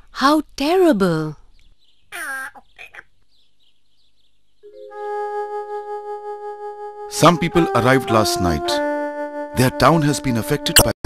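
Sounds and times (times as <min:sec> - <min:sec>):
sustained synthesizer chord: 0:04.6 - 0:09.7.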